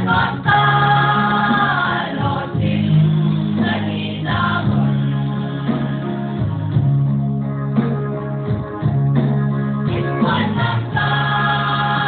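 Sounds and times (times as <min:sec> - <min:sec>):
church choir singing in harmony: 0:00.0 - 0:06.4, 0:09.9 - 0:12.0.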